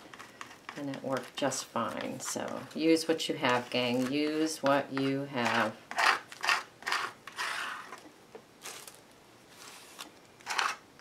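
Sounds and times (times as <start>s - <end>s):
plastic card scraping canvas board: 3.5s - 8.0s, 9.6s - 10.8s.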